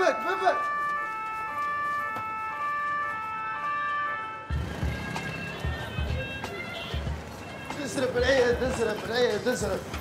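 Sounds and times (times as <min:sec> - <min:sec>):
two-tone police siren: 0:00.0 - 0:06.2.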